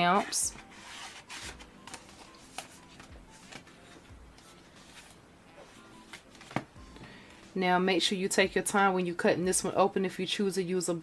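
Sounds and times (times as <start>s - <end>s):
paper envelopes handled: 0.0s - 6.8s
quiet background music: 0.0s - 11.0s.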